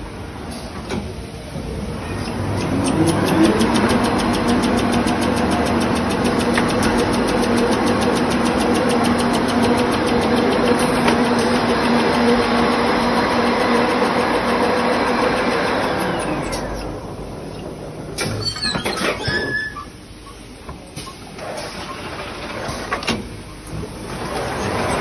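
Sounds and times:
machinery humming: 0.0s - 18.4s
fast even ticking: 2.6s - 10.8s.

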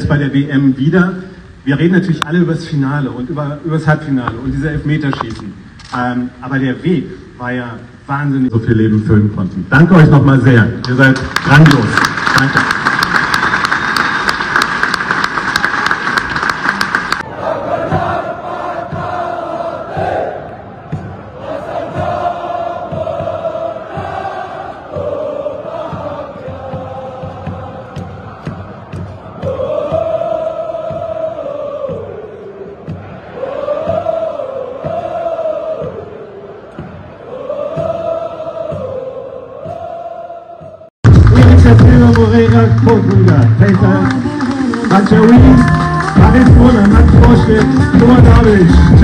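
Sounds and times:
people clapping: 10.8s - 17.3s, 41.4s - 49.0s
crowd singing a chant: 17.2s - 41.0s
regular low beat: 39.6s - 49.0s.

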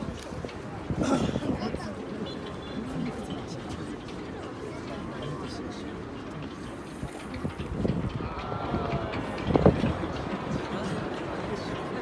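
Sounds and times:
spectators murmuring: 0.0s - 12.0s.

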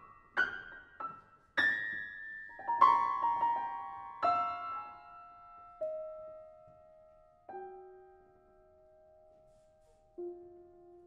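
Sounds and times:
quiet sparse piano piece: 0.0s - 11.0s.

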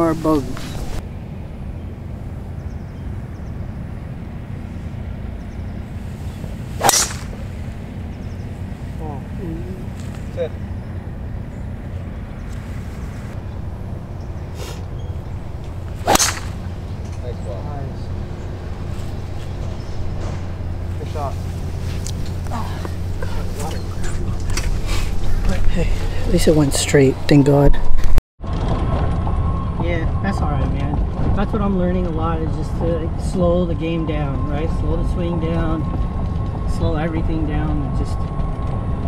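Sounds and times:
low background rumble: 0.0s - 39.0s
golf club striking ball: 6.8s - 7.6s, 14.7s - 17.3s.

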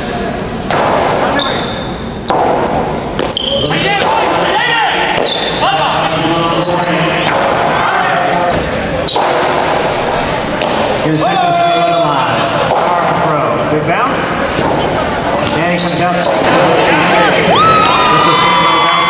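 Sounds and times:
crowd voices: 0.0s - 19.0s.

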